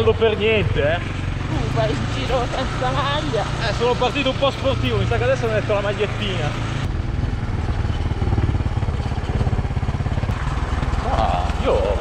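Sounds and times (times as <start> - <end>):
motorcycle engine running: 0.0 - 12.0
tyres on gravel road: 0.0 - 12.0.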